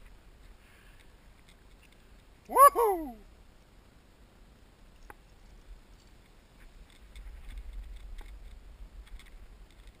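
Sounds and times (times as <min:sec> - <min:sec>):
faint clicks and ticks: 0:04.9 - 0:10.0.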